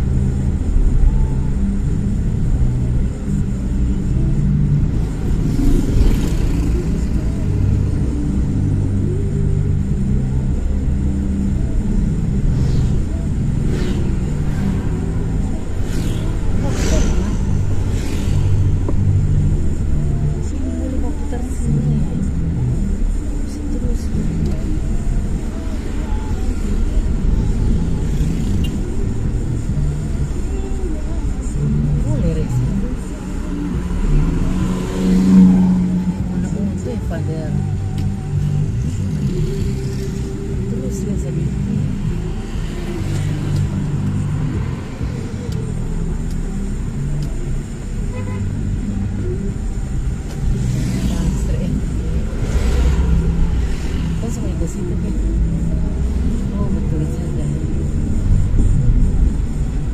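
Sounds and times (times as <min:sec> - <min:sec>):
car engine and tyre rumble: 0:00.0 - 0:59.9
muffled voices: 0:00.0 - 0:59.9
passing traffic whoosh: 0:00.0 - 0:59.9.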